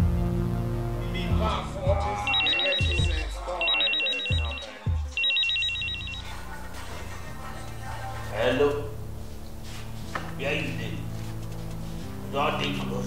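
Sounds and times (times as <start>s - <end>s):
trailer music with low drum hits: 0.0s - 2.2s
phone ringing electronic trill: 2.2s - 6.5s.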